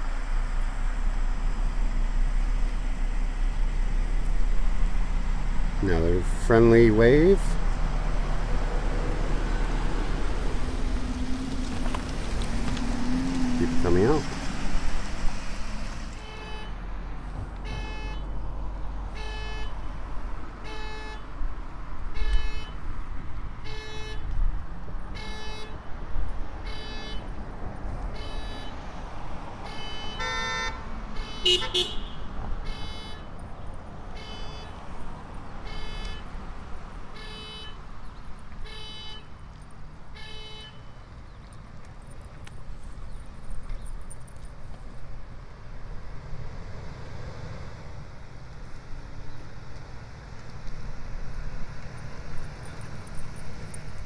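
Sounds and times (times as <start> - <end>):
low rumble of traffic: 0.0 - 54.0
longer horn tone: 16.1 - 16.8, 19.1 - 19.8, 23.6 - 24.3, 29.6 - 33.3
car horn honks: 16.2 - 16.8, 17.6 - 18.3, 19.1 - 19.8, 20.6 - 21.2, 22.2 - 22.8, 23.6 - 24.3, 25.1 - 25.8, 26.6 - 27.3, 28.2 - 28.8, 29.6 - 33.3, 34.1 - 34.8, 35.6 - 36.3, 37.2 - 37.8, 38.6 - 39.4, 40.1 - 41.0.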